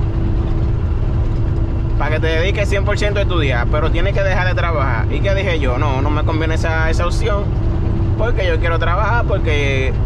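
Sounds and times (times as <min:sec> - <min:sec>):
road noise: 0:00.0 - 0:10.0
truck engine rumble: 0:00.0 - 0:10.0.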